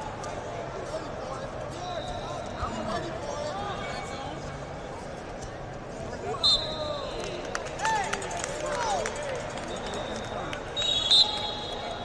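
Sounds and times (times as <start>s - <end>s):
hubbub of voices and shouting: 0.0s - 12.0s
referee's whistle blast: 6.4s - 6.8s, 10.8s - 12.0s.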